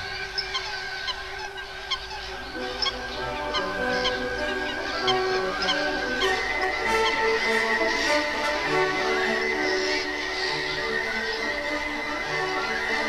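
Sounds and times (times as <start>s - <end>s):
background music with held tones: 0.0s - 13.0s
waterbirds calling: 0.0s - 13.0s.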